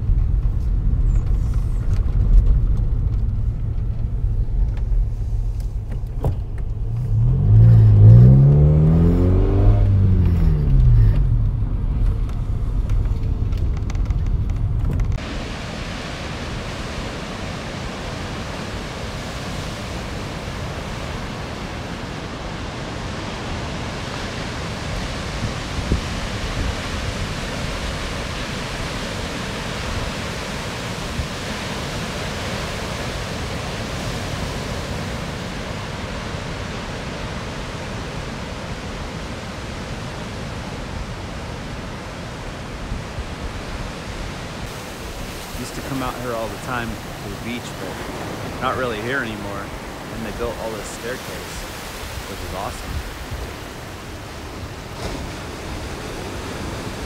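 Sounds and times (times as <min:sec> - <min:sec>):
ocean waves breaking: 0:06.8 - 0:14.1, 0:15.0 - 0:57.0.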